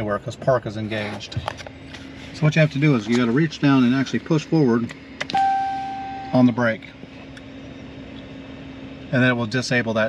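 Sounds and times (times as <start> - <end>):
idling truck cab hum: 0.0 - 10.0.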